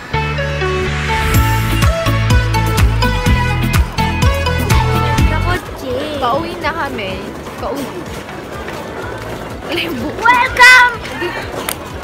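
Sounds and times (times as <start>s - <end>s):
background music: 0.0s - 12.0s
crowd talking: 2.6s - 12.0s.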